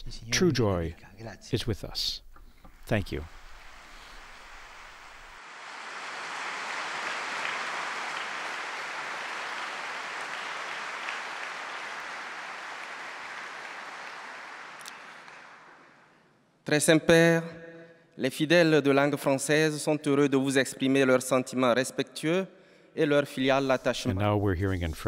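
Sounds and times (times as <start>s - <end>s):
audience applauding: 3.2s - 16.2s.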